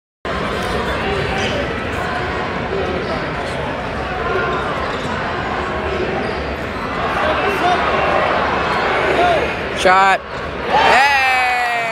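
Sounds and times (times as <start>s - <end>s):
arena crowd din: 0.3s - 11.9s
spectator shouting: 10.7s - 11.9s.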